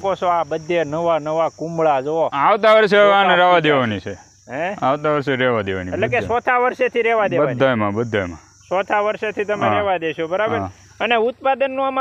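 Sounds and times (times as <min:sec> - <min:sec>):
high insect chirring: 0:00.0 - 0:12.0
man speaking: 0:00.0 - 0:12.0.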